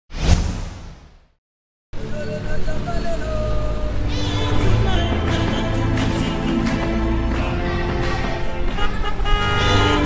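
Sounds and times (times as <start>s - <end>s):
whoosh with low hit: 0.1s - 1.4s
music: 2.0s - 10.0s.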